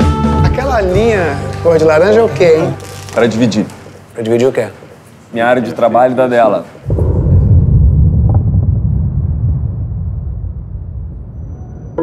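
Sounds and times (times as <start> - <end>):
deep low rumble: 6.8 - 12.0.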